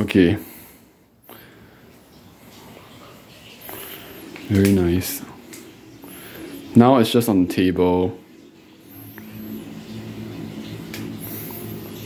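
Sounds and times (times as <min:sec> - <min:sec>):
low hum: 0:00.4 - 0:12.0.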